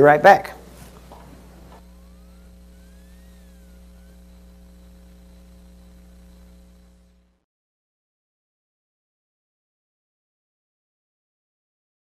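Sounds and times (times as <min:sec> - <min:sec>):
electrical mains hum: 0:00.0 - 0:07.5
faint high gliding tones: 0:01.4 - 0:07.4.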